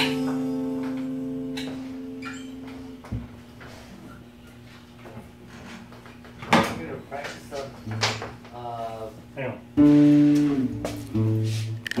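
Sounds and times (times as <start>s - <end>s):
acoustic guitar strummed: 0.0s - 3.1s, 9.8s - 12.0s.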